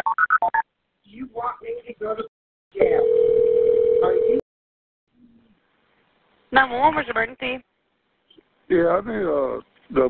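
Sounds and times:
telephone ringback tone: 0:02.8 - 0:04.4.

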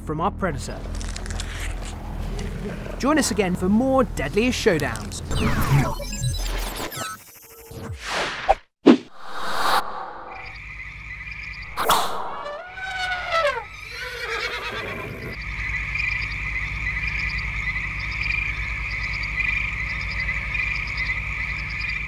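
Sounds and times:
frog-like croaking chorus: 0:10.3 - 0:22.0
whinny-like gliding call: 0:11.7 - 0:15.3.

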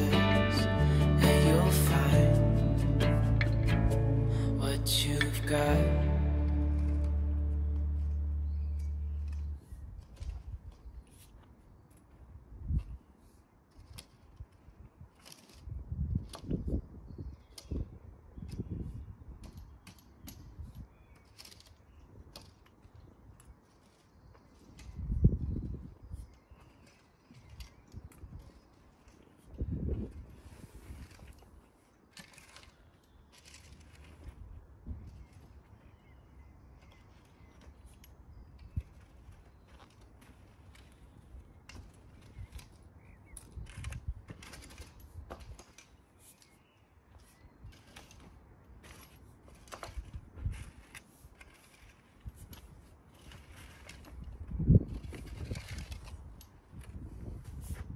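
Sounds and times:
rake scraping soil: 0:00.0 - 0:12.1, 0:12.8 - 0:16.6, 0:19.4 - 0:57.9.

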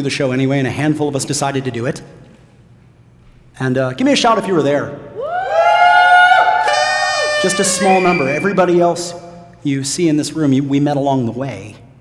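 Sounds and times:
audience whooping and shouting: 0:05.2 - 0:08.5.

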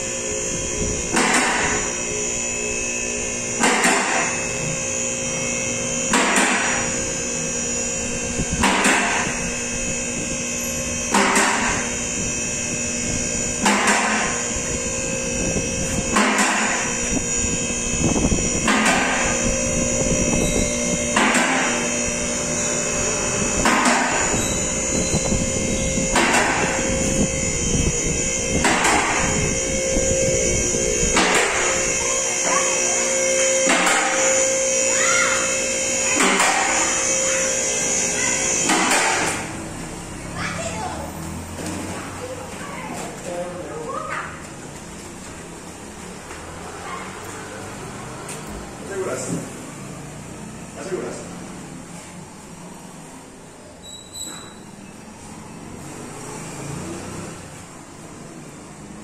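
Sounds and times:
hydraulic power unit humming: 0:00.0 - 0:59.0.

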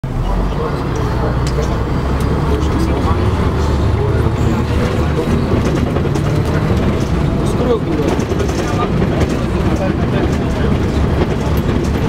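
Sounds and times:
bus engine and road rumble: 0:00.0 - 0:12.0
people talking: 0:00.0 - 0:12.0
rattles: 0:04.6 - 0:12.0.

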